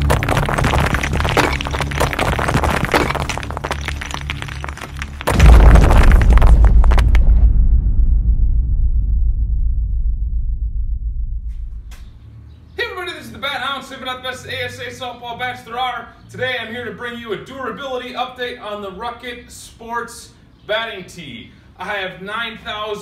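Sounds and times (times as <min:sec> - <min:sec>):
shattering stone crash: 0:00.0 - 0:07.7
deep boom: 0:00.0 - 0:12.2.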